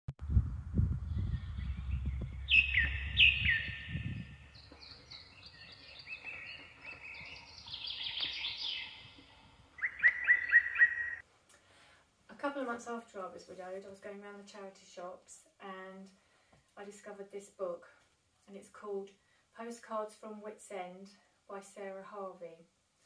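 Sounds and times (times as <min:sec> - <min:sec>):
low rumble: 0:00.2 - 0:05.6
birds singing and calling: 0:01.1 - 0:11.2.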